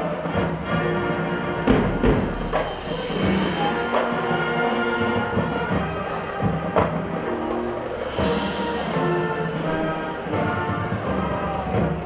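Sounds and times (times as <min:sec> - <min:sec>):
brass chords: 0:00.0 - 0:12.0
drum and timpani strikes: 0:00.0 - 0:12.0
percussion: 0:00.0 - 0:12.0.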